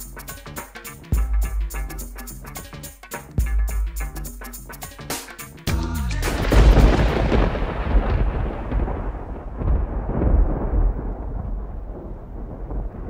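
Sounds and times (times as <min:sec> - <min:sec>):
deep rolling rumble: 0:06.1 - 0:13.0.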